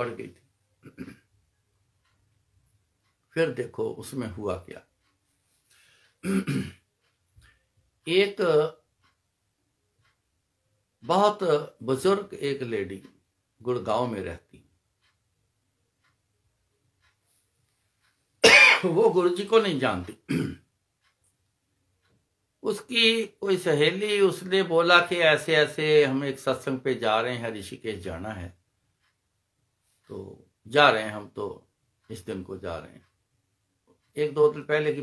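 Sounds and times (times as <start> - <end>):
man speaking: 0.0 - 1.1, 3.3 - 4.9, 8.1 - 8.8, 11.0 - 14.6, 18.5 - 20.4, 22.6 - 28.6, 30.1 - 33.1, 34.1 - 35.0
man clearing his throat: 0.8 - 1.3, 6.2 - 6.8, 18.4 - 19.0, 20.3 - 20.7.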